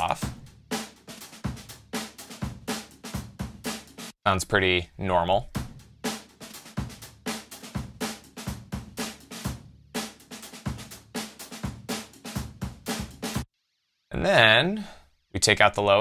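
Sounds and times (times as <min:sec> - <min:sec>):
drum kit playing groove: 0:00.0 - 0:04.2, 0:05.5 - 0:13.5.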